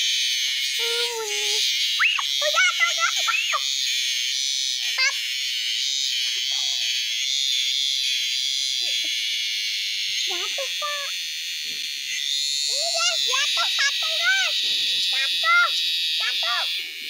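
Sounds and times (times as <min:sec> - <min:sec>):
high-pitched insect buzzing: 0:00.0 - 0:17.0
child squealing: 0:00.8 - 0:03.7, 0:05.0 - 0:05.2, 0:15.2 - 0:16.7.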